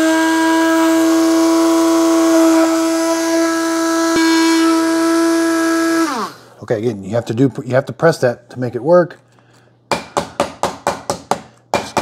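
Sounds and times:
coffee grinder bursts: 0.0 - 6.4.

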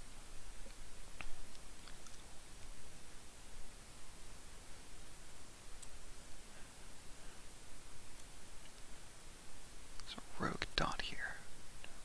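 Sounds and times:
faint background hiss: 0.0 - 12.0
person speaking quietly: 10.0 - 11.5.

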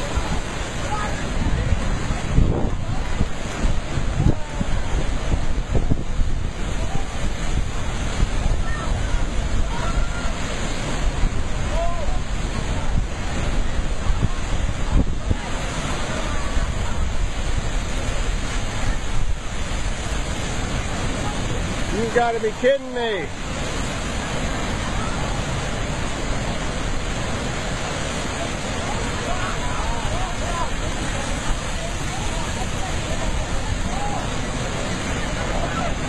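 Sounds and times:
surf breaking over rocks: 0.0 - 36.0.

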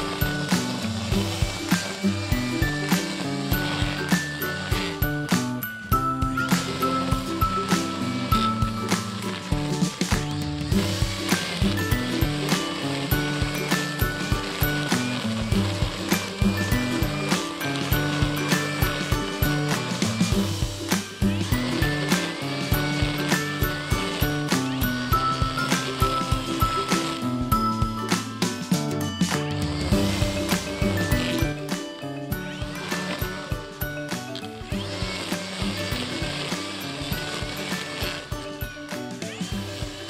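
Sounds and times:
background music with steady beat: 0.0 - 40.0.

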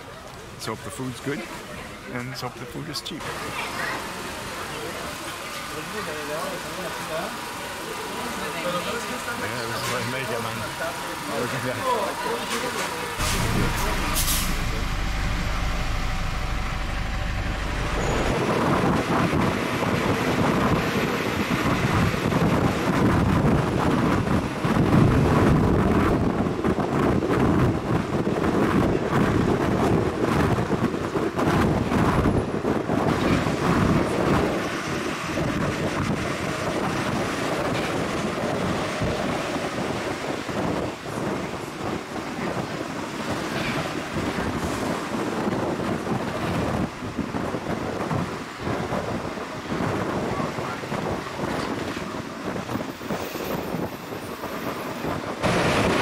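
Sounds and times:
bus engine: 0.0 - 56.0
road noise: 0.0 - 56.0.

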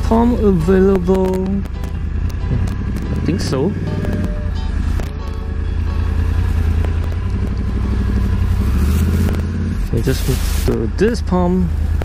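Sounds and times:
motorcycle engine idling: 0.0 - 10.1.

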